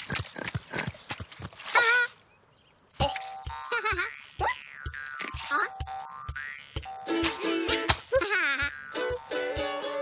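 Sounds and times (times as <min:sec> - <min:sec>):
cartoon clicking footsteps: 0:02.9 - 0:09.3
wavering cartoon vocal cry: 0:08.1 - 0:09.2.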